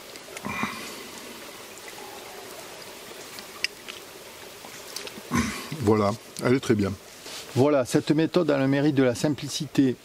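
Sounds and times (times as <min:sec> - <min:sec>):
stream running: 0:00.0 - 0:10.0.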